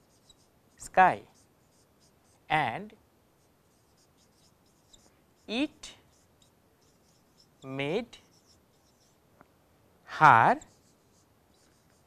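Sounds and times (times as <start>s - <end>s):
marker pen writing on whiteboard: 0.0s - 2.5s, 3.4s - 9.2s, 10.6s - 12.0s.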